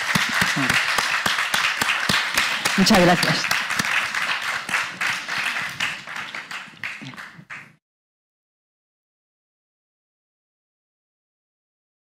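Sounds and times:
audience applause: 0:00.0 - 0:07.8.

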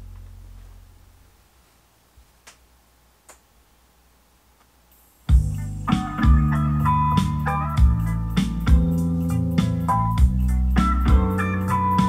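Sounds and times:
vinyl surface hiss: 0:00.0 - 0:12.0
vinyl record clicks: 0:02.2 - 0:03.6.

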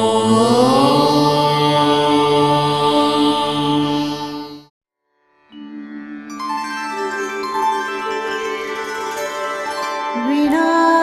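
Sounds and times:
devotional chant held note: 0:00.0 - 0:04.7.

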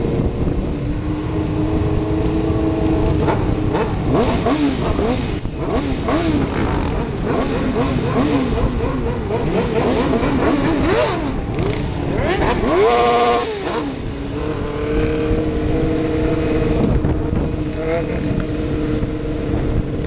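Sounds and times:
engine running steadily: 0:00.0 - 0:20.0
motorcycle engines revving: 0:00.0 - 0:20.0.

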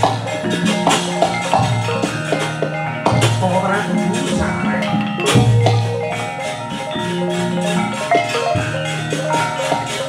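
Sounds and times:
gamelan metallophones ringing: 0:00.0 - 0:10.0.

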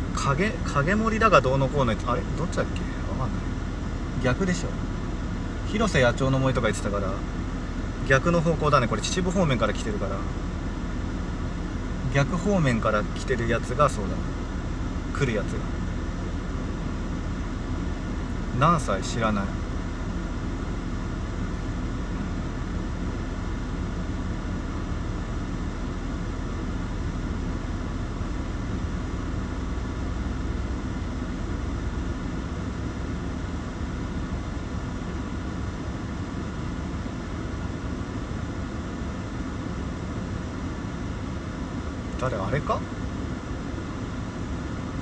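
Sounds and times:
air conditioning fan noise: 0:00.0 - 0:45.0
car engine idling: 0:00.0 - 0:45.0.

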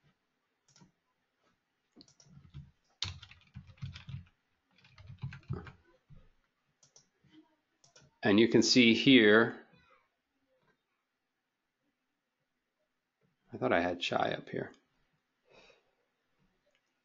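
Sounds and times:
computer keyboard typing: 0:02.0 - 0:05.8, 0:06.8 - 0:07.1, 0:07.8 - 0:08.2.

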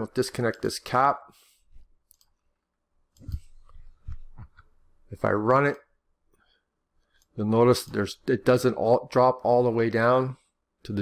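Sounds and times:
computer mouse clicks: 0:02.0 - 0:02.4, 0:03.1 - 0:04.7.

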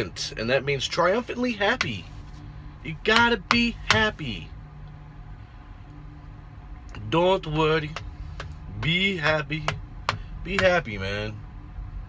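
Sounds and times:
faint rumble: 0:00.0 - 0:12.0
low steady hum: 0:00.0 - 0:12.0.

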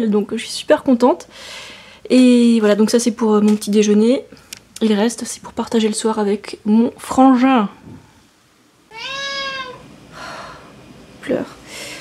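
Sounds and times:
cat meowing: 0:08.9 - 0:09.9.

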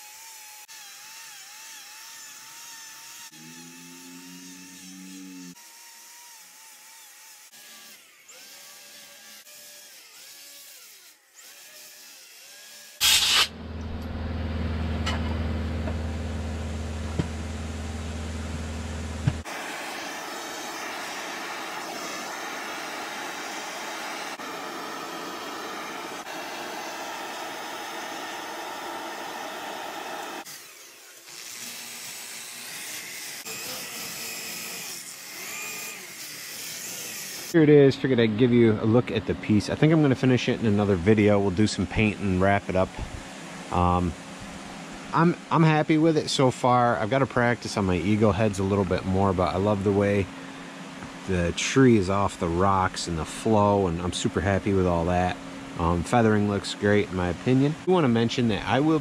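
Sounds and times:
handheld grinder whining: 0:00.0 - 0:13.5, 0:19.4 - 0:37.6
drill spinning a brush: 0:06.3 - 0:13.5, 0:19.4 - 0:37.6
propane torch rushing: 0:13.0 - 0:13.6, 0:19.4 - 0:30.5.

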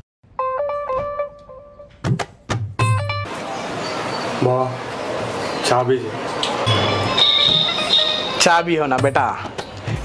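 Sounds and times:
electronic beeping jingle: 0:06.7 - 0:08.4.

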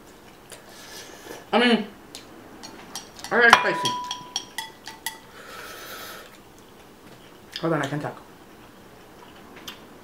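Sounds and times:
chopsticks clinking against glass bowl: 0:02.9 - 0:05.2.

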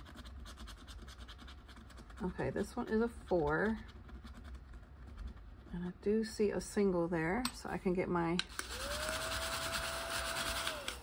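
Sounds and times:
scratch-off sticker scratching: 0:00.0 - 0:05.9.

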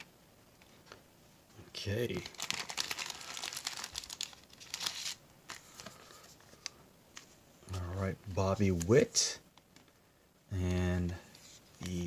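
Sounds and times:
foil wrapper crinkling: 0:02.0 - 0:06.8.

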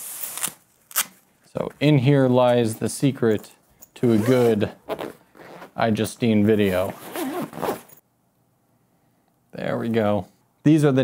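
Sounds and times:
zipper on bag pulled open: 0:06.9 - 0:08.0.

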